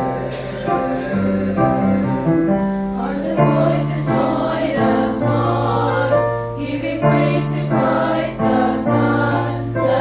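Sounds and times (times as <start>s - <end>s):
choir singing in harmony: 0.0s - 10.0s
recorded accompaniment music: 0.0s - 10.0s.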